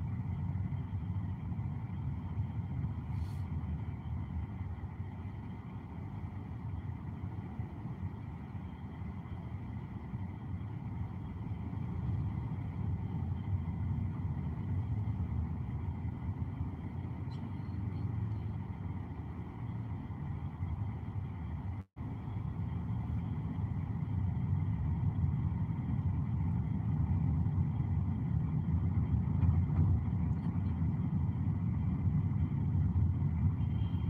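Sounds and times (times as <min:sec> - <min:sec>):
car engine rumble from inside: 0:00.0 - 0:34.0.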